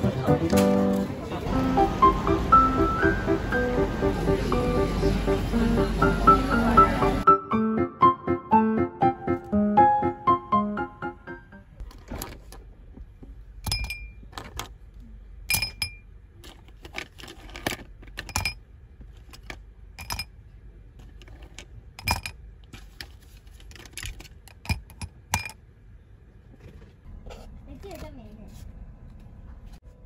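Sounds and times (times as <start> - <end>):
pens clinking against glass jar: 15.5 - 16.0, 17.3 - 18.6, 20.0 - 20.3.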